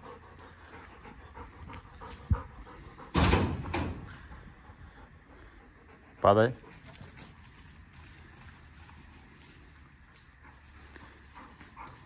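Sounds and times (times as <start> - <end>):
dog panting: 0.0 - 12.0.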